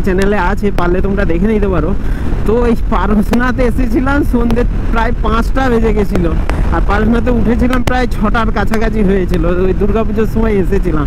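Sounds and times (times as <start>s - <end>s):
man talking: 0.0s - 11.0s
motorcycle cruising rumble: 0.0s - 11.0s
wind on microphone: 0.0s - 11.0s.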